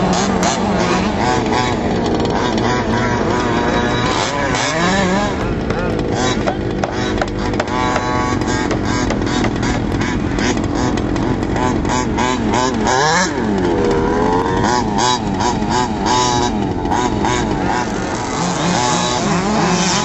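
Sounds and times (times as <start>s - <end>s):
small gas engines revving: 0.0s - 20.0s.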